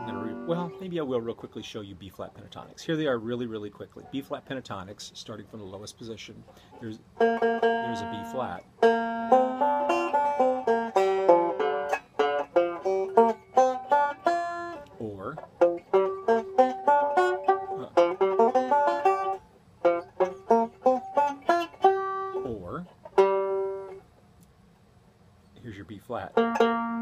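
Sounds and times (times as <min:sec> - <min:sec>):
banjo picking quick runs: 0:00.0 - 0:01.5, 0:05.5 - 0:14.8, 0:15.4 - 0:24.0, 0:26.3 - 0:27.0.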